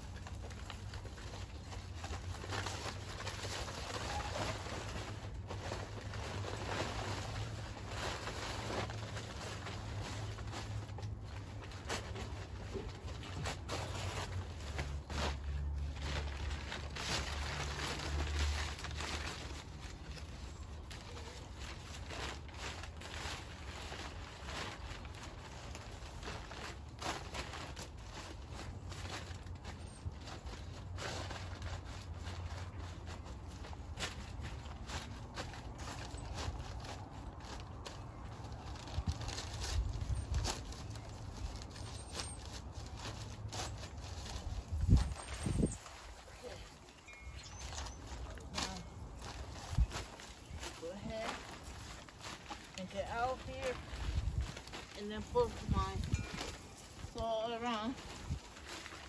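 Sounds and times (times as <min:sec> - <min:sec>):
packing paper rustling and crinkling: 0:00.0 - 0:59.0.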